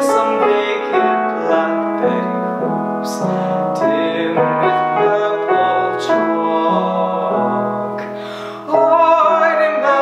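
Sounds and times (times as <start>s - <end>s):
person singing: 0.0s - 10.0s
piano slow chords: 0.0s - 10.0s.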